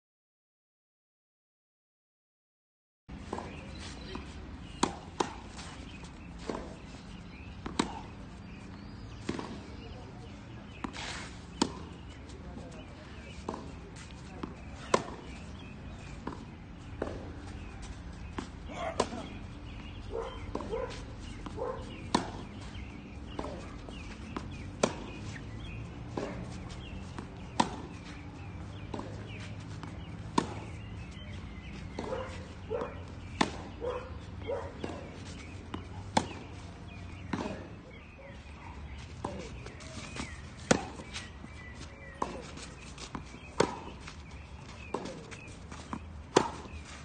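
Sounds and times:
tennis racket hitting ball: 21.3 - 32.4, 33.3 - 33.8, 34.8 - 37.7, 39.2 - 41.3, 42.0 - 43.9, 44.8 - 46.8.

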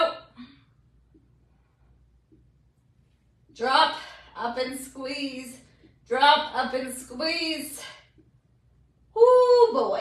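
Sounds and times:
woman speaking: 0.0 - 0.4, 3.6 - 8.0, 9.2 - 10.0.

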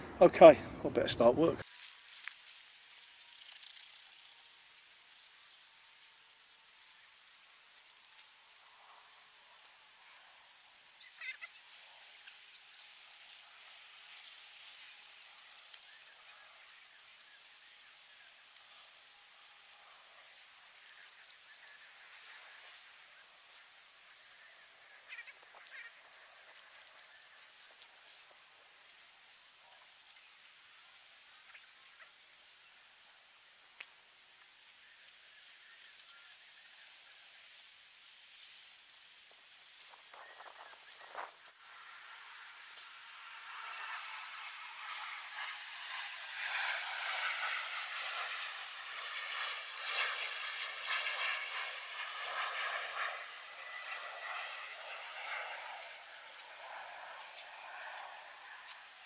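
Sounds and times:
corn stalks rustling and snapping: 20.8 - 22.8, 58.7 - 58.9.

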